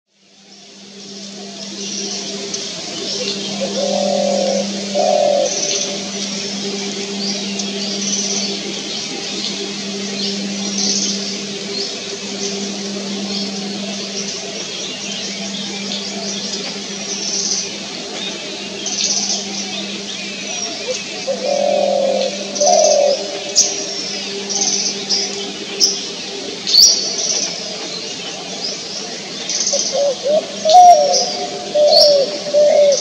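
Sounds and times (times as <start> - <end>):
steady low hum: 0.3 - 29.5
small birds chirping: 1.2 - 33.0
dove cooing: 2.0 - 28.7, 29.7 - 33.0.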